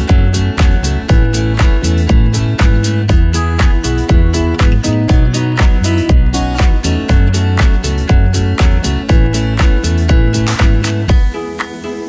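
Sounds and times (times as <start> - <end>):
upbeat music with bass line: 0.0 - 12.0.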